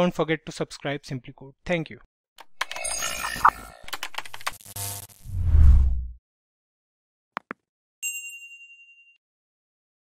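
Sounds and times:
bright bell ding: 8.0 - 9.2.

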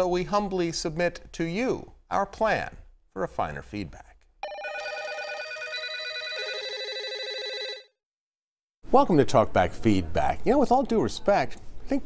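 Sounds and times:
trilling telephone ring: 4.4 - 8.0.

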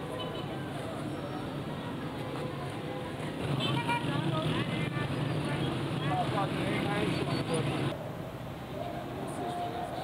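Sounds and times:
city traffic noise: 0.0 - 10.0.

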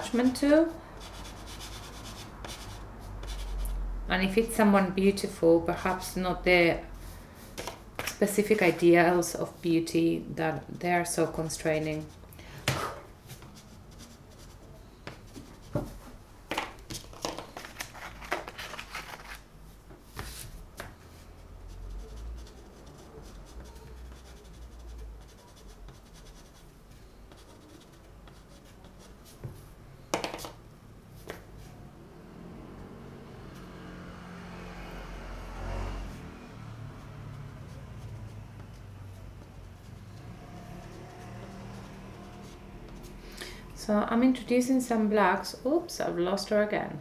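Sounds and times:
chalk pastel scratching paper: 0.0 - 4.5, 11.0 - 12.3, 13.3 - 16.0, 20.2 - 29.4, 36.7 - 43.2
vehicle passing by: 31.5 - 43.9.

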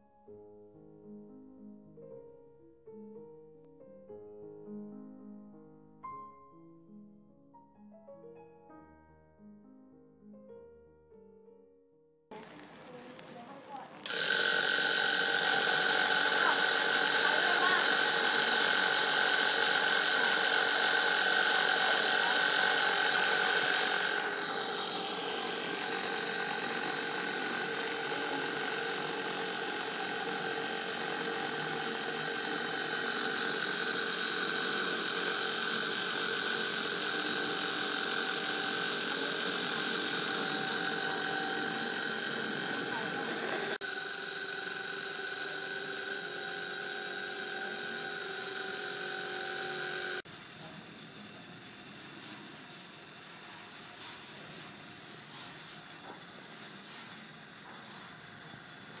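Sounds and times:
electric motor whirring: 12.4 - 59.0.

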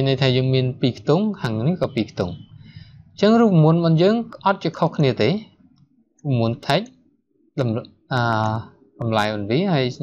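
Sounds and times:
man speaking: 0.0 - 10.0.

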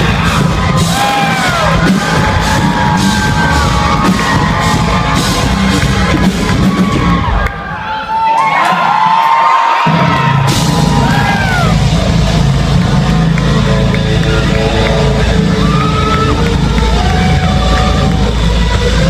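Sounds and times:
live rock band: 0.0 - 7.5
drums and bass: 0.0 - 7.8, 9.8 - 19.0.

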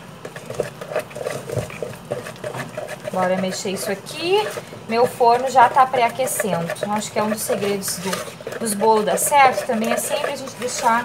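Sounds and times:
spatula stirring thick batter: 0.0 - 11.0.

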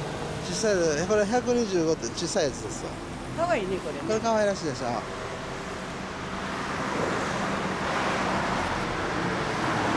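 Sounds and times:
traffic noise: 0.0 - 9.9.

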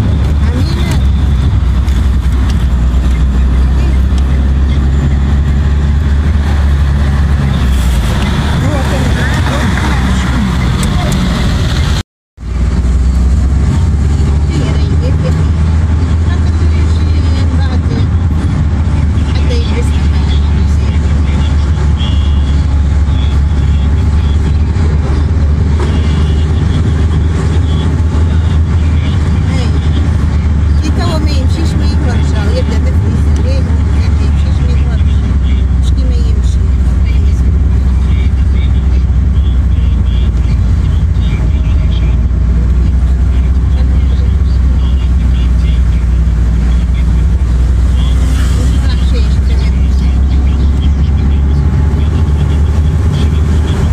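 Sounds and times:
engine and road rumble in car: 0.0 - 53.9.

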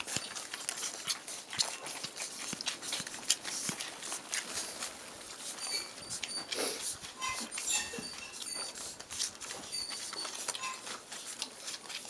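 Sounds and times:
puppies squeaking and whimpering: 0.0 - 12.0.

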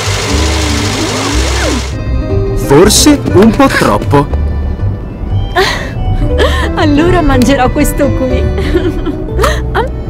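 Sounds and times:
car engine and road noise: 0.0 - 10.0
music: 0.0 - 10.0.

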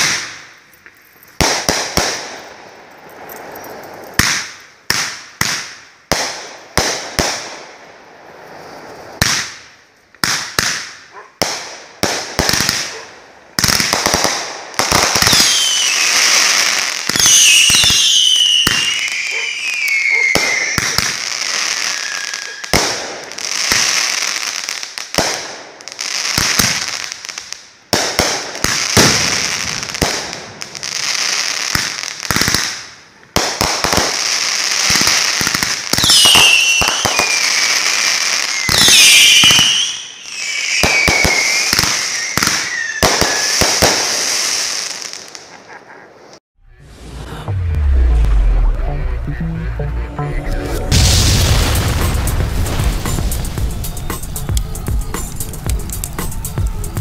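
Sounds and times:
fireworks whistles falling in pitch: 14.9 - 24.2, 33.9 - 45.3, 50.9 - 57.0.

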